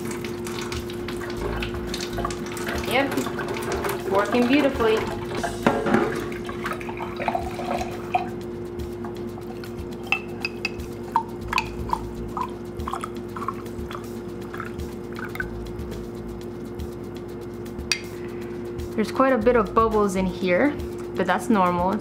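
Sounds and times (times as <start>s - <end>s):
water drips: 0.0s - 5.4s, 9.5s - 15.6s
water running into glass jar: 0.0s - 8.4s, 9.4s - 15.5s
steady low hum: 0.0s - 22.0s.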